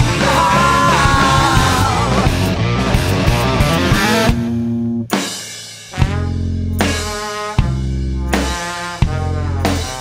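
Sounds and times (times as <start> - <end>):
electric guitar: 0.0 - 5.2
drums: 0.0 - 10.0
rock band playing: 0.0 - 10.0.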